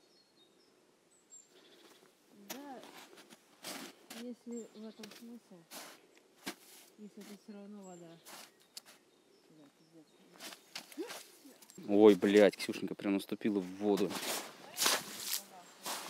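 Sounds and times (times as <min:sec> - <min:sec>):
boots crunching in snow: 0:01.9 - 0:07.5, 0:08.2 - 0:09.0, 0:10.4 - 0:12.5, 0:13.8 - 0:16.0
soft indistinct talking: 0:04.1 - 0:06.0, 0:06.9 - 0:12.9.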